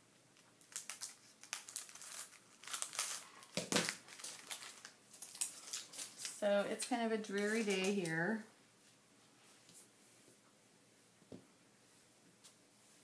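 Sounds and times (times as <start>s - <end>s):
plastic packaging crinkling: 0.4s - 8.2s.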